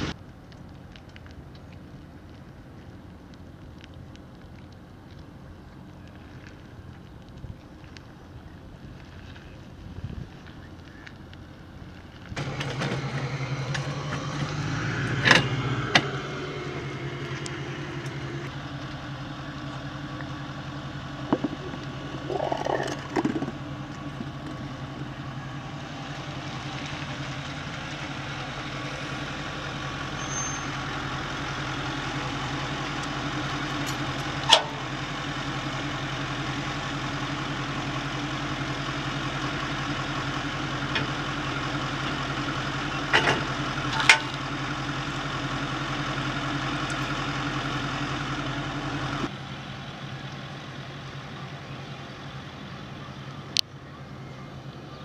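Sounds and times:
pickup truck engine idling: 0:10.4 - 0:55.0.

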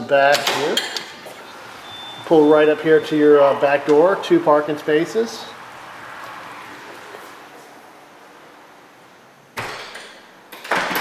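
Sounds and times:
low background noise: 0:00.0 - 0:11.0
door banging shut: 0:09.6 - 0:11.0.

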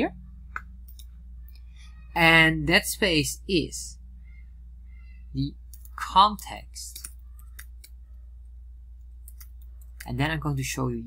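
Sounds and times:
steady low hum: 0:00.0 - 0:11.0
computer clicks: 0:05.7 - 0:06.0, 0:09.2 - 0:10.1.

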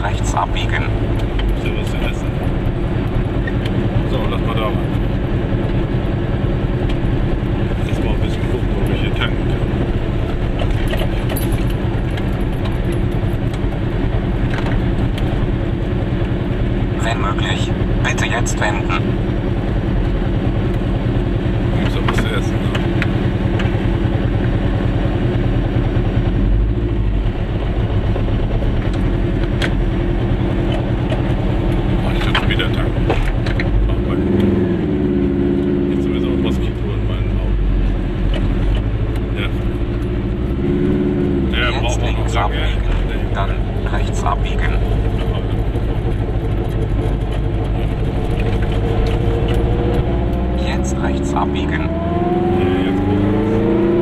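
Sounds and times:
two-stroke car engine running: 0:00.0 - 0:54.0.

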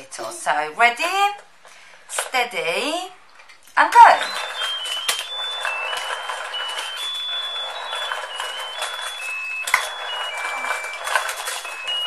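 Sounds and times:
electronic beeping tune: 0:04.0 - 0:12.0
toy motor whirr and plastic rattle: 0:04.0 - 0:12.0.

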